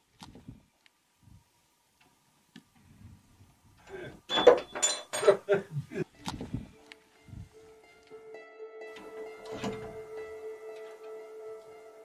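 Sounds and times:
door unlocking with metal clinks: 4.3s - 5.4s, 9.0s - 10.1s.

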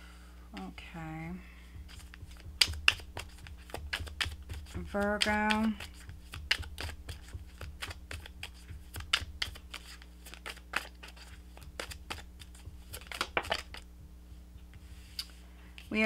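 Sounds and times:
cards being shuffled by hand: 1.7s - 13.9s.

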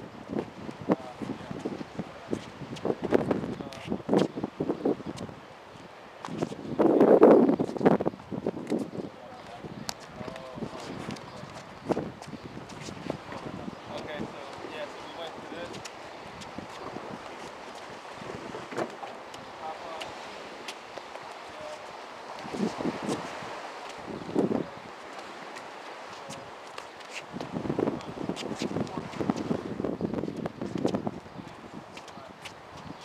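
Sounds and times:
wind on microphone: 0.0s - 33.0s
sneakers shuffling on concrete: 9.9s - 13.5s, 25.0s - 29.5s.

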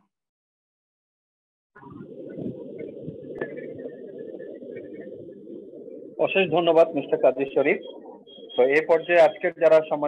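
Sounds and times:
rough microphone background noise: 1.8s - 10.0s.

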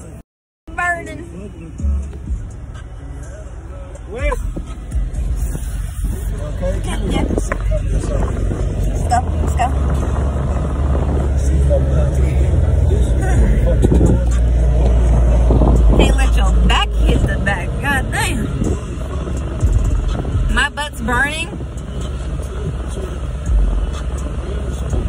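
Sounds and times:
car cabin rumble: 0.0s - 25.0s.

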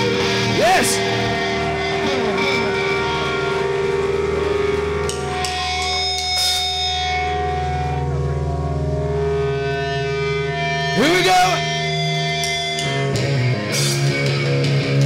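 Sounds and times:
drums: 0.0s - 15.0s
electric guitars and bass chords: 0.0s - 15.0s.

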